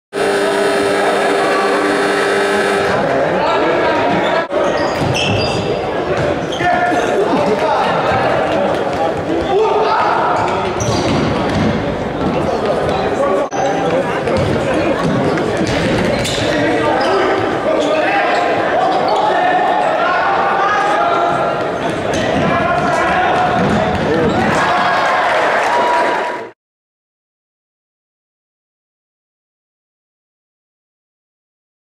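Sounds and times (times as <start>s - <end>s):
ball kicked and bouncing on court: 13.8s - 16.4s, 22.1s - 24.4s
people calling out in echoing hall: 16.6s - 26.5s.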